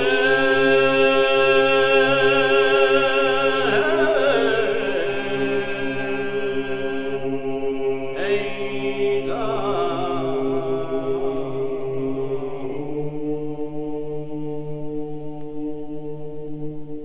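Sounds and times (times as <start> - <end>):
solo upper voice singing: 0.0 - 15.6
male choir low drone: 0.0 - 17.0.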